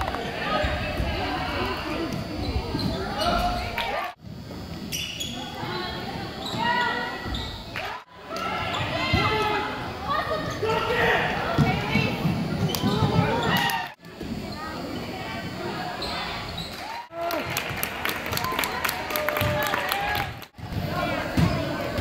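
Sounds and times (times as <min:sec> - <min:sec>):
many voices in a gym: 0:00.0 - 0:22.0.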